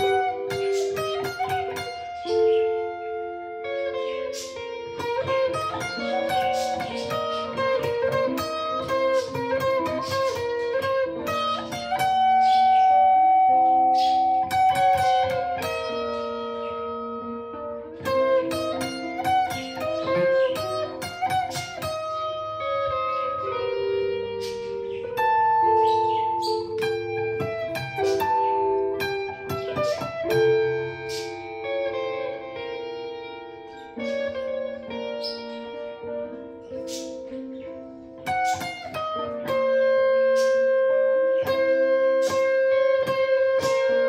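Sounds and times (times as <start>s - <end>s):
electric guitar lead: 0.0s - 44.0s.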